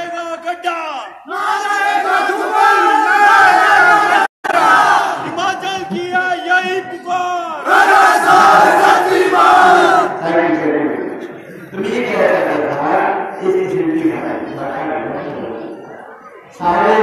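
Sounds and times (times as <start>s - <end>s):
crowd shouting slogans: 1.2s - 5.6s, 7.4s - 10.2s.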